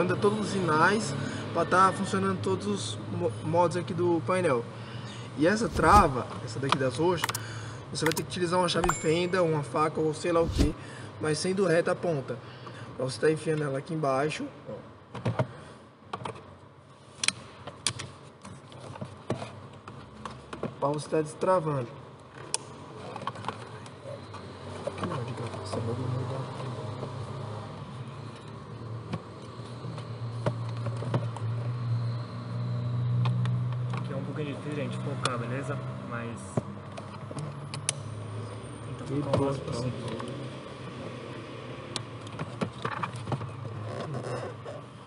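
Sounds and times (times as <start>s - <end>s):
screwdriver prying plastic clicks: 7.2s - 7.4s
sharp plastic clicks: 7.2s - 7.5s, 8.1s - 8.3s.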